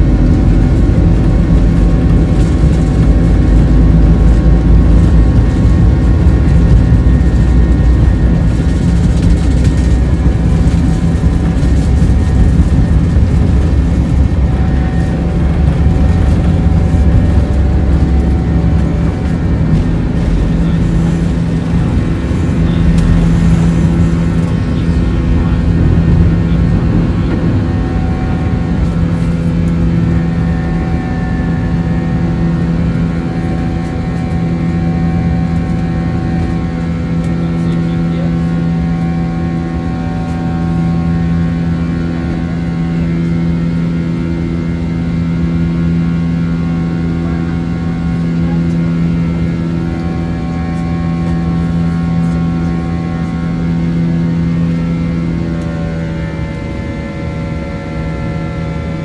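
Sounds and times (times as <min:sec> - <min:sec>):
jet engines droning in cabin: 0:00.0 - 0:59.0.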